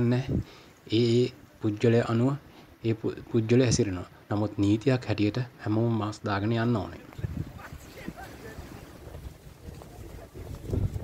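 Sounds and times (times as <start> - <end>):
wind rumbling on microphone: 0.0 - 0.6, 7.0 - 11.0.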